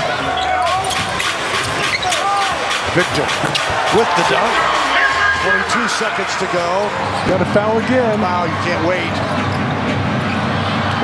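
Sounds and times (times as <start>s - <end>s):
arena crowd noise: 0.0s - 11.0s
sneaker squeaks: 0.3s - 2.3s.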